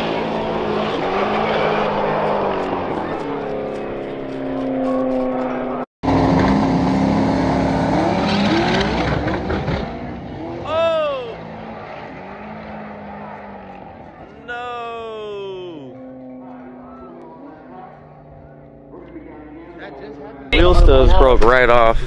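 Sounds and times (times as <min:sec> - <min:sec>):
tire screech: 0:00.0 - 0:20.5
race cars accelerating: 0:00.0 - 0:21.1.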